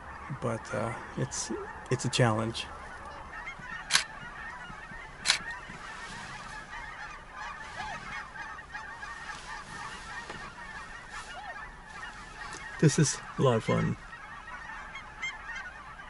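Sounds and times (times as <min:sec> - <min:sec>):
flock of birds calling: 0:00.0 - 0:16.0
sharp clicks: 0:03.9 - 0:04.1, 0:05.2 - 0:05.4.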